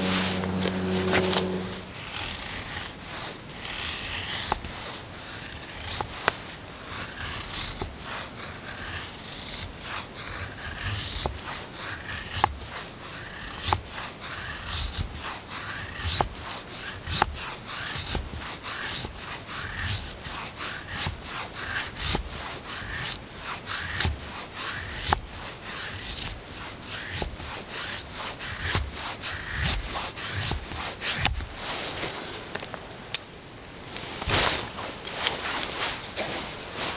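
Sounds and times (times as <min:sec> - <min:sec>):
knife scraping wooden stick: 0:00.0 - 0:32.2.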